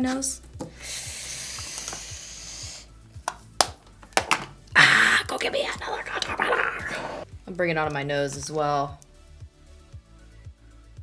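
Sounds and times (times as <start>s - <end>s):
soft music with low beat: 0.0s - 11.0s.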